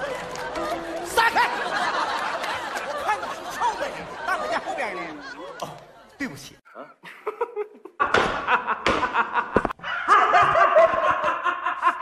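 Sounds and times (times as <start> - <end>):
men laughing loudly: 0.0 - 5.7, 7.0 - 12.0.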